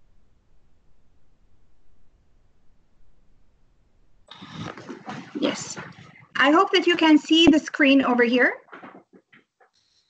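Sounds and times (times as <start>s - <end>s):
faint microphone hum: 1.4s - 8.9s.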